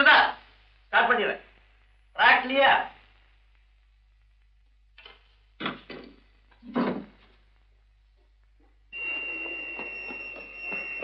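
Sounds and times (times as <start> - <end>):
high-pitched buzzer tone: 9.0 - 11.0.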